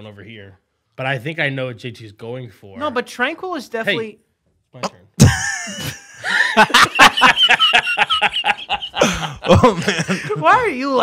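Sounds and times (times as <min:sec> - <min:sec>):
men laughing: 0:05.2 - 0:11.0.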